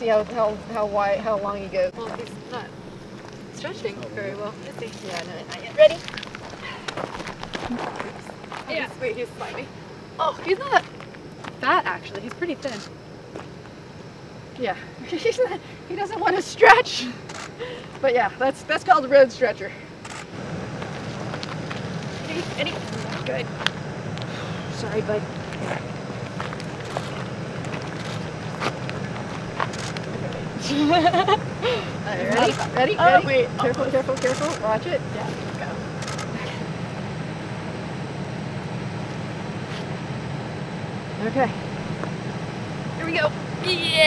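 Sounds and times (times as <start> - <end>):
steady low rumble: 0.0 - 44.0.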